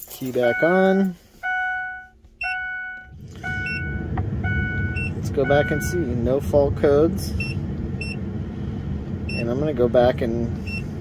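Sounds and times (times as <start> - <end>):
steady low rumble: 0.0 - 11.0
dashboard warning chimes: 0.2 - 6.6, 7.4 - 8.2, 9.3 - 9.6, 10.6 - 11.0.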